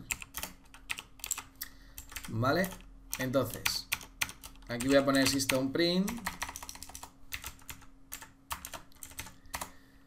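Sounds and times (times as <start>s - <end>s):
computer keyboard typing: 0.0s - 9.7s.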